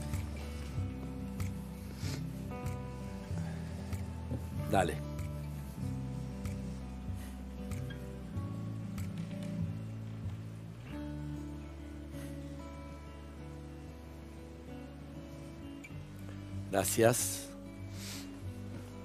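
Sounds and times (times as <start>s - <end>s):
slow instrumental music: 0.0s - 19.0s.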